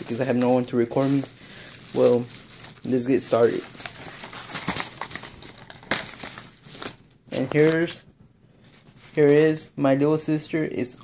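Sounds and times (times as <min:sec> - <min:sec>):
paper mailer crinkling: 0:00.0 - 0:07.9.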